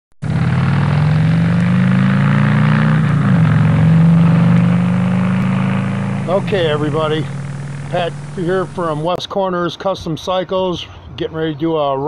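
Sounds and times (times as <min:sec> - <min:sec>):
engine running steadily: 0:00.2 - 0:09.2.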